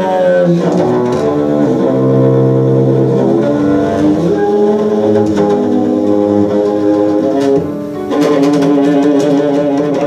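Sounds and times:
bowed bass low notes: 0.0 - 10.0.

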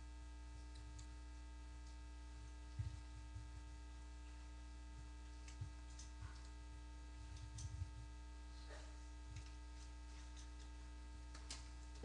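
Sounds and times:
electrical mains hum: 0.0 - 12.0.

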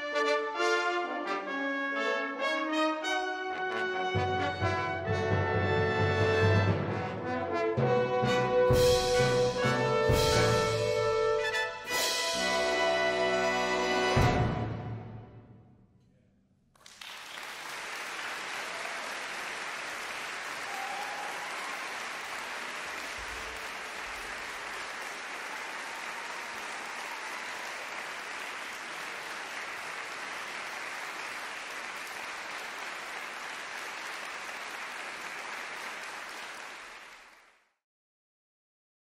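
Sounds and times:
audience applauding: 16.8 - 37.7.

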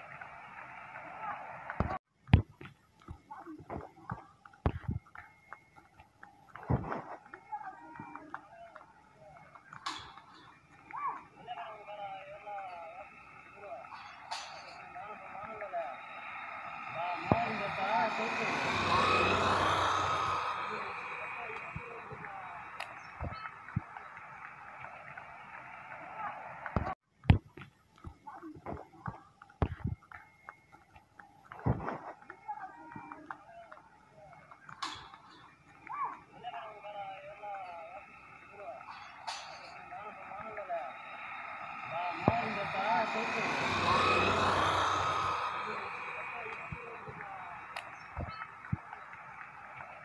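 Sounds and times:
faint voices: 0.0 - 2.0, 6.4 - 27.0, 31.4 - 50.0
road vehicle passing: 0.0 - 2.0, 7.2 - 27.0, 32.2 - 50.0
scattered clicks: 20.7 - 44.6, 45.6 - 50.0.

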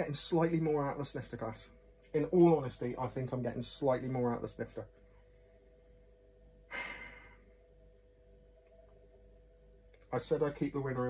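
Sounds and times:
faint steady hum: 0.0 - 11.0
man sighing: 6.7 - 7.4.

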